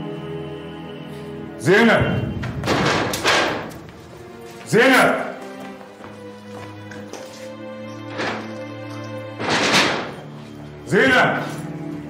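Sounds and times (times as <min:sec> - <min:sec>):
loud noisy thumps: 0:02.0 - 0:03.8.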